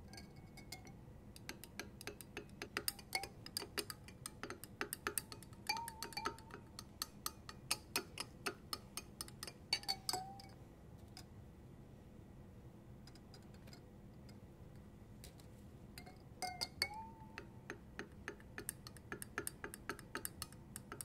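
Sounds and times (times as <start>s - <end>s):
glass rod clinking in glass beaker: 0.0s - 10.6s, 16.0s - 21.0s
ringing glass tones: 5.3s - 6.8s, 9.7s - 10.6s, 16.0s - 17.5s.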